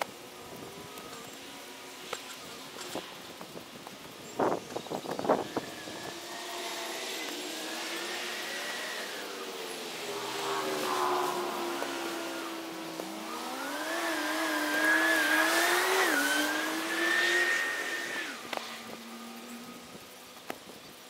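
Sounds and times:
vehicle engine revving: 5.0s - 20.0s.

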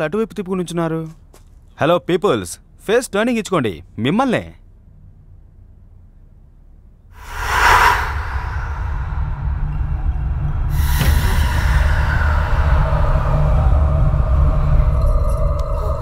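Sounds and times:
sharp whoosh: 7.2s - 10.3s
rushing swell: 7.2s - 10.5s
low rumbling drone: 7.2s - 16.0s
faint eerie music: 7.4s - 16.0s.

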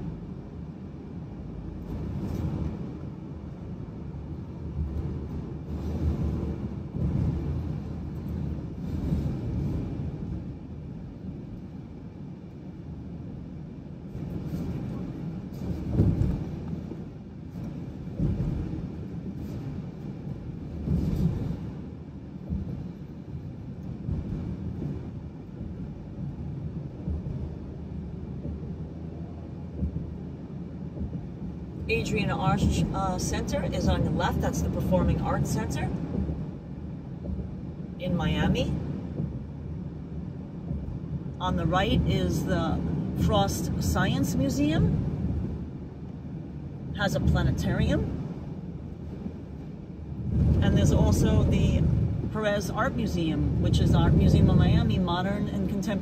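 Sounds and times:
car cabin road rumble: 0.0s - 56.0s.

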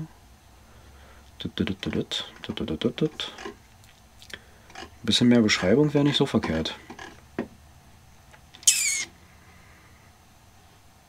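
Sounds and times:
short high-pitched squeak: 8.6s - 9.1s.

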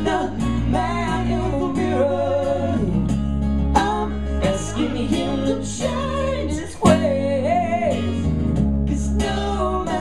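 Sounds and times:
electric bass: 0.0s - 10.0s
strummed acoustic guitar: 0.0s - 10.0s.

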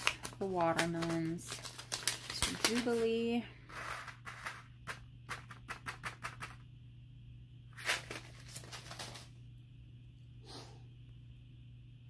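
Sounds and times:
paper packet rustling: 0.0s - 4.6s, 7.8s - 9.4s
seeds rattling in paper packet: 0.0s - 6.5s.

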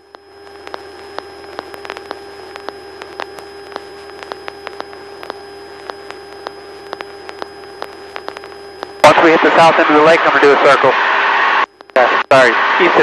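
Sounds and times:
crackling clicks: 0.0s - 12.4s
electrical hum with thin tone: 0.0s - 13.0s.

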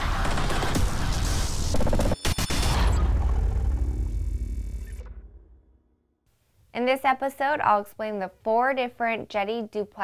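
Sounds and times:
deep low rumble: 2.9s - 5.8s.

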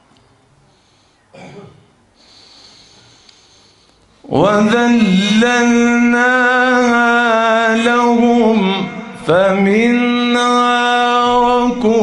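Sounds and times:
throat clearing: 1.3s - 2.0s.

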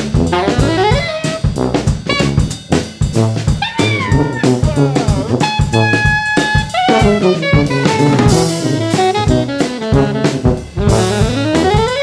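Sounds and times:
bass: 0.0s - 12.0s
drum kit: 0.0s - 12.0s
saxophone bending notes: 0.3s - 1.5s, 3.6s - 12.0s.

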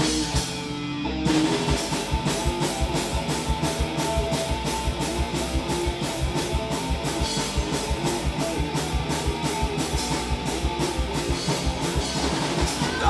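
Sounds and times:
drum kit with cymbal hits: 0.0s - 13.0s
electric guitars: 0.0s - 13.0s.

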